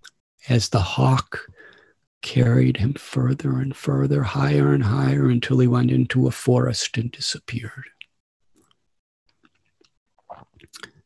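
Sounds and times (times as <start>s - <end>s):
faint mouth clicks: 9.4s - 11.0s.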